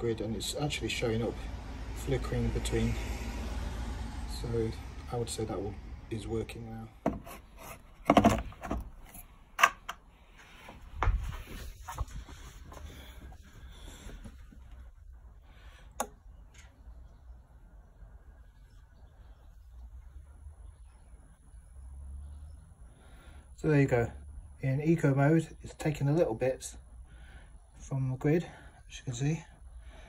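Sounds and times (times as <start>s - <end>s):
faint steady hum: 0.0s - 30.0s.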